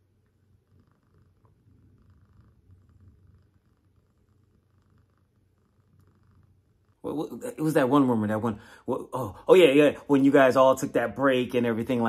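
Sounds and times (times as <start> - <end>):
cat purring: 0.0 - 12.0.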